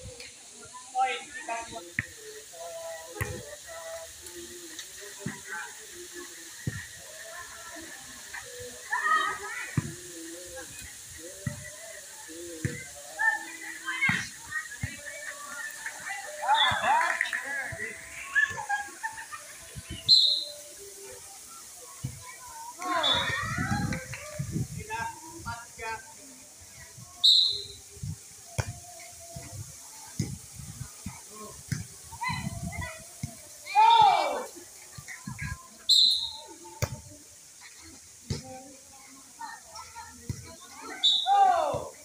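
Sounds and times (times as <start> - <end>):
background chatter: 0.0 - 42.0
players shouting: 22.8 - 23.6, 33.6 - 34.6, 41.0 - 42.0.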